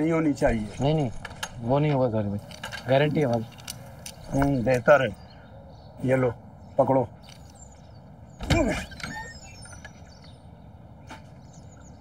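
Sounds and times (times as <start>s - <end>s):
outdoor background ambience: 0.0s - 12.0s
faint high bird chirps: 3.4s - 12.0s.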